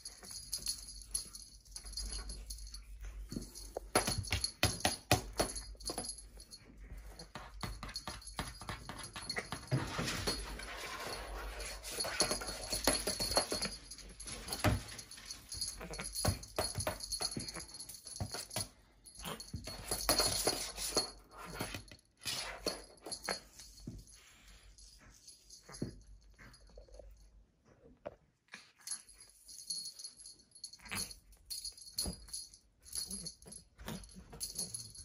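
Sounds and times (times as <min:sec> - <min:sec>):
high faint jingle: 0:00.0 - 0:21.7, 0:28.8 - 0:35.0.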